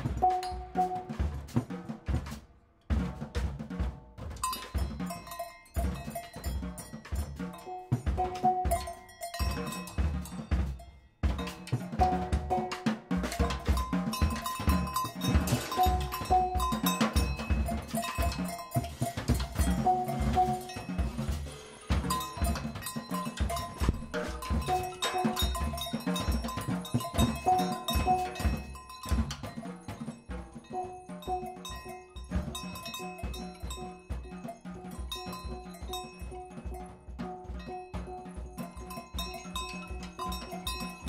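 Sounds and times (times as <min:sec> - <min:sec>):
wooden xylophone notes: 0:00.0 - 0:01.3, 0:04.4 - 0:41.0
ringing pitched percussion strikes: 0:00.0 - 0:01.5, 0:04.4 - 0:41.0
bass drum and drum hits: 0:07.2 - 0:29.6.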